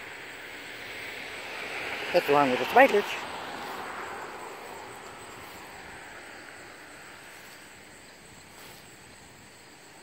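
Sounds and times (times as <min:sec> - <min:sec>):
distant engine hiss: 0:00.0 - 0:10.0.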